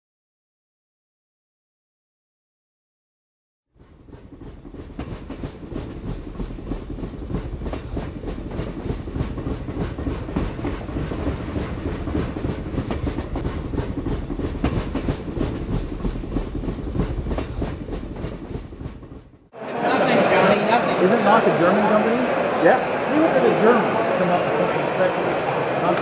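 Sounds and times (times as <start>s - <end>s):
train rumbling on rails: 3.8s - 19.6s.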